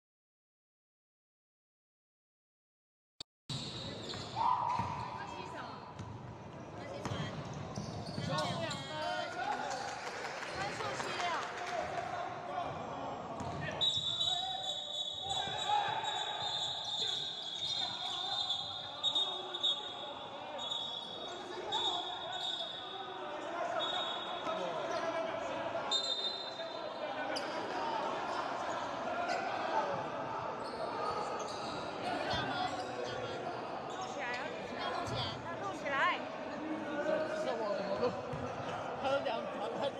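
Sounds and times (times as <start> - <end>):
players' voices in large hall: 3.5 - 39.9.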